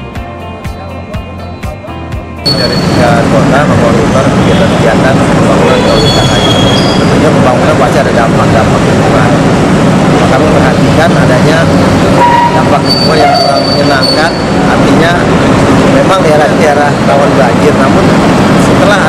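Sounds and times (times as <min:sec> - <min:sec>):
man talking: 0:00.9 - 0:09.6, 0:10.2 - 0:11.8, 0:12.4 - 0:19.0
heavy engine noise: 0:02.4 - 0:19.0.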